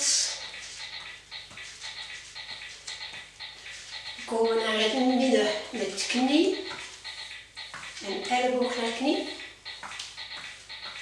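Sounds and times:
low room hum: 0.0 - 11.0
soft footsteps on a floor mat: 0.6 - 4.0.

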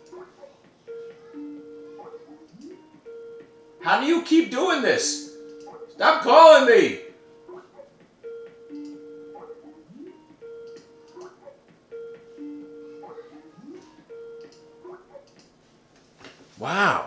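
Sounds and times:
phone musical ringtone: 0.9 - 4.3, 5.0 - 15.1.

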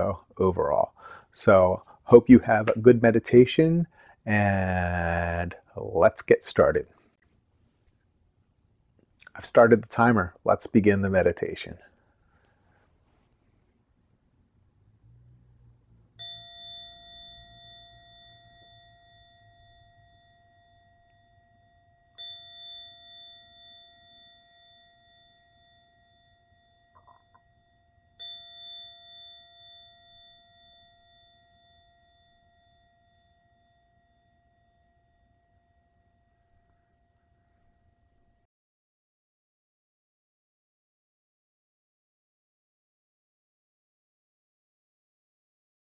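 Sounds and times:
meditation chime ringing: 0.0 - 2.9, 15.2 - 38.5.

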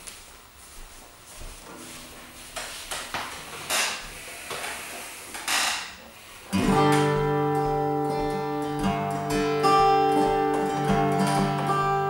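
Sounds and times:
guitar handling rustles and knocks: 1.6 - 4.0, 6.5 - 12.0
guitar strings ringing faintly: 6.5 - 12.0
guitar strum: 6.5 - 12.0.

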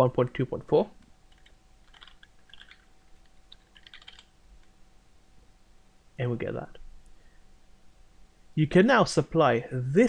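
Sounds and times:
typing on computer keyboard: 1.3 - 2.9, 3.5 - 4.3.

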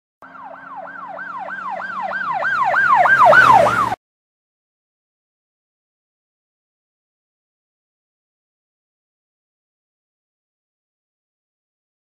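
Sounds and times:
emergency siren yelping: 0.2 - 4.0.

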